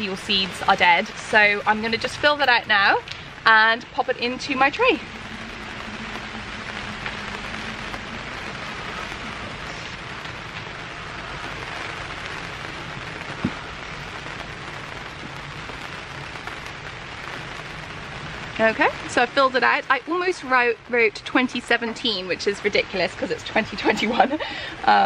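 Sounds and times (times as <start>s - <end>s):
rain pattering on plastic sheet: 0.0s - 25.0s.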